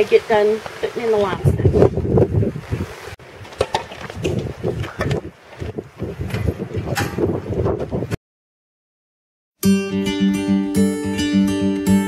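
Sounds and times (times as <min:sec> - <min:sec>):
wind buffeting microphone: 0:00.0 - 0:08.2.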